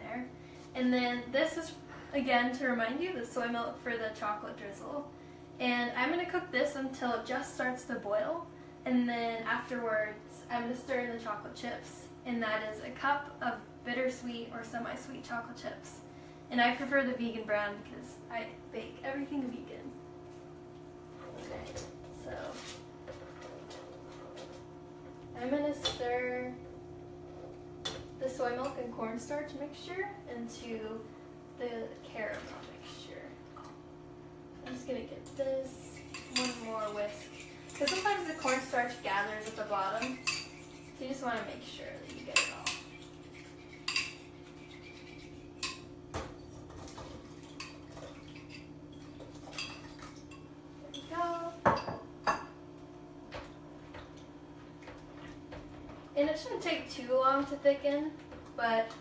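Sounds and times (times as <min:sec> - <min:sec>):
steady low hum: 0:00.0 - 0:59.0
whisk scraping a saucepan: 0:35.7 - 0:48.7.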